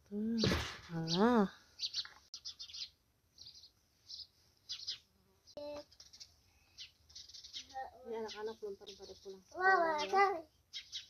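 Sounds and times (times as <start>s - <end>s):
faint bird chirps: 0.3s - 11.0s.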